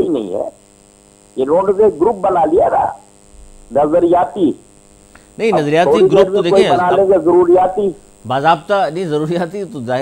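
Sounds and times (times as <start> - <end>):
electrical hum: 0.0 - 10.0
faint high-pitched whine: 0.0 - 10.0
man talking: 1.4 - 3.0, 3.7 - 4.6, 5.4 - 10.0.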